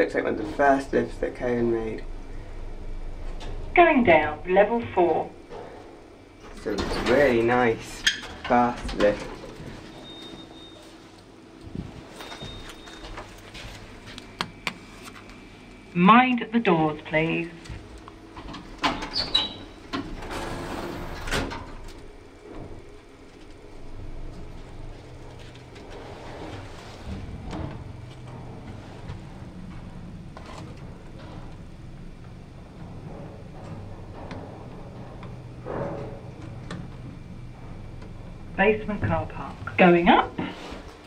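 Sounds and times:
lift running with low hum: 0:00.0 - 0:41.0
lift doors sliding shut: 0:05.3 - 0:10.9, 0:18.4 - 0:22.9, 0:24.0 - 0:39.2.

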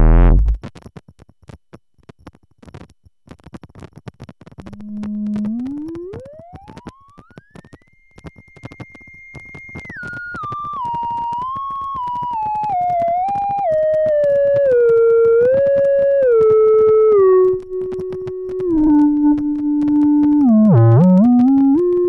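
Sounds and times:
synthesizer theremin-like tone: 0:00.0 - 0:00.6, 0:04.7 - 0:07.6, 0:09.6 - 0:22.0
crackle of static clicks: 0:00.0 - 0:22.0.

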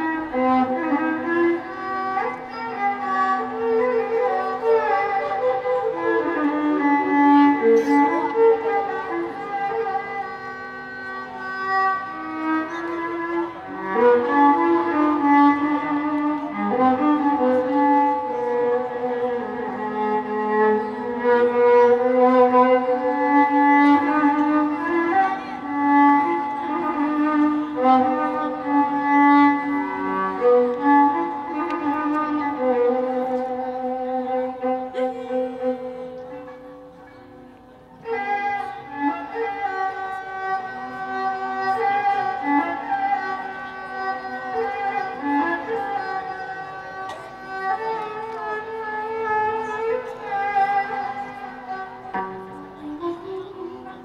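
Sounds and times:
violin playing slow melody: 0:00.0 - 0:54.0.

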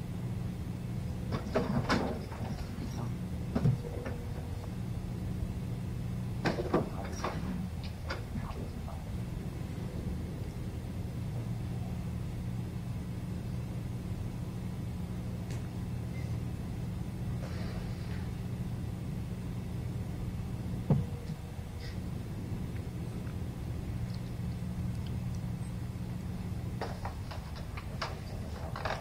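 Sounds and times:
low room hum: 0:00.0 - 0:29.0
knocks clicks and rustles: 0:01.3 - 0:04.8, 0:06.4 - 0:09.0, 0:26.7 - 0:29.0.

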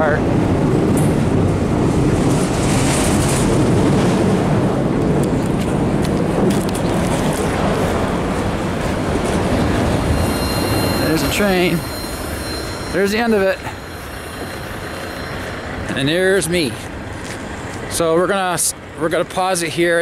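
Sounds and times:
freight train rumbling on bridge: 0:00.0 - 0:20.0.

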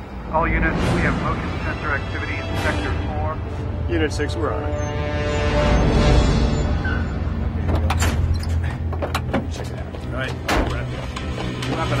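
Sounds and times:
tense background music: 0:00.0 - 0:12.0.

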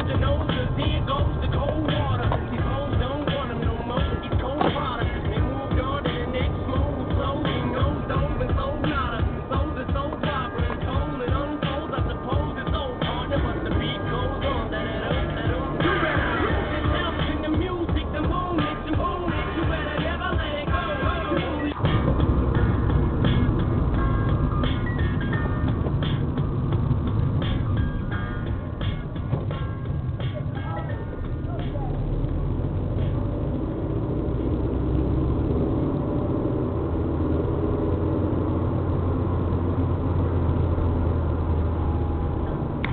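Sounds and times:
pop song from car stereo: 0:00.0 - 0:42.9.

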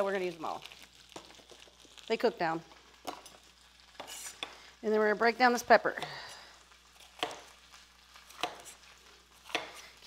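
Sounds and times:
knife chopping on plastic board: 0:07.2 - 0:07.5, 0:08.3 - 0:08.8, 0:09.4 - 0:09.8.

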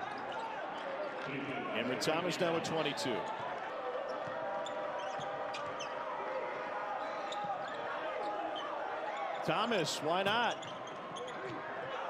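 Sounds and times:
sneaker squeaks: 0:04.1 - 0:06.0, 0:07.0 - 0:09.5, 0:10.5 - 0:12.0.

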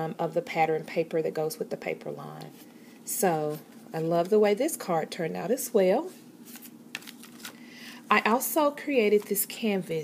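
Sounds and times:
paper rustling: 0:06.4 - 0:07.6, 0:09.0 - 0:09.5.

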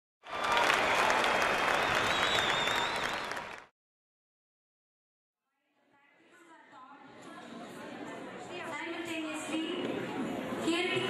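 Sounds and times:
audience applause: 0:00.2 - 0:03.7
high wavering whistle: 0:01.8 - 0:03.4.

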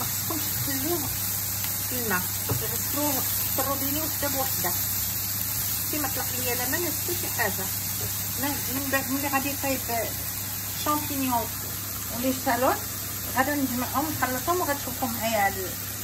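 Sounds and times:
mushrooms sizzling in a frying pan: 0:00.0 - 0:16.0
person talking: 0:00.3 - 0:01.1.

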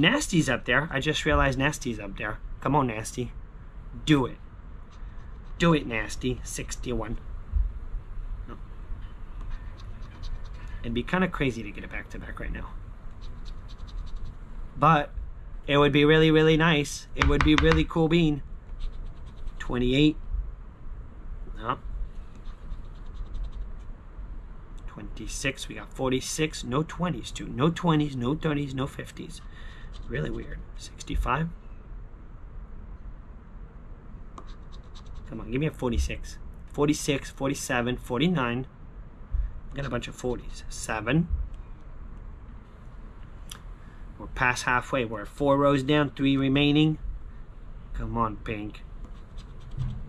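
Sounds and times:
coin scraping scratch-off ticket: 0:29.2 - 0:30.5.

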